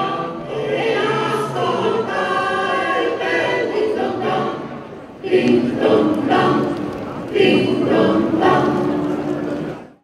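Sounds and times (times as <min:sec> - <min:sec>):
mixed choir singing: 0:00.0 - 0:09.8.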